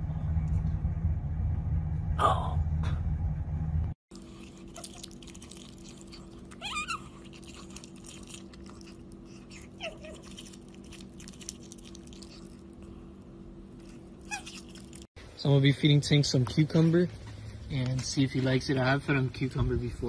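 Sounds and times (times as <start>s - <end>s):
low electrical hum: 0.0s - 20.0s
otter chewing corn: 4.1s - 15.1s
otter squeaking: 4.5s - 12.6s.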